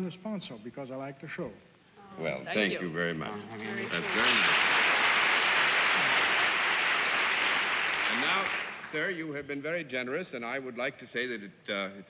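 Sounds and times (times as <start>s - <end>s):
audience applauding: 3.6s - 9.2s.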